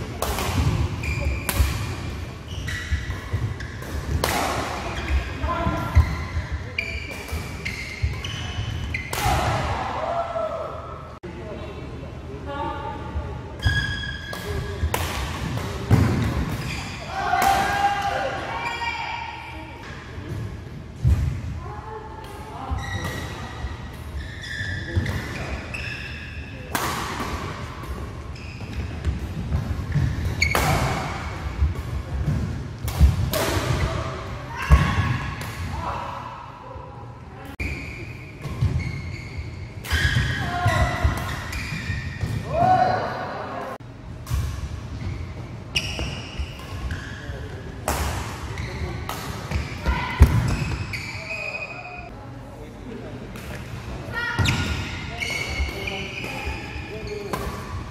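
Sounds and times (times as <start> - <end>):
rackets hitting shuttlecock: 0.1 - 2.1, 2.7 - 6.2
shoes squeaking on court: 0.8 - 4.2, 4.8 - 9.1, 16.4 - 17.1, 22.7 - 26.7, 27.7 - 31.8, 37.6 - 42.4, 44.9 - 47.7, 48.4 - 52.1, 54.4 - 57.9.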